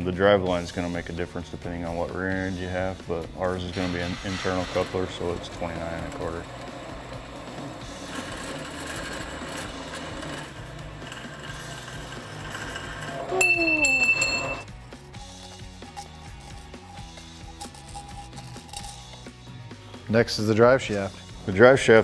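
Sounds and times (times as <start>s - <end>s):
background music: 0.0s - 22.0s
bandsaw cutting metal tube: 2.6s - 19.4s
metallic clink and ringing: 13.3s - 19.3s.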